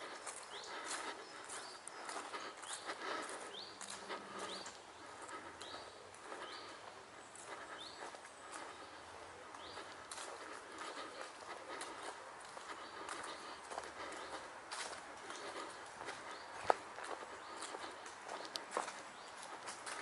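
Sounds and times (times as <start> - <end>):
footsteps on leafy grass: 0.0 - 20.0.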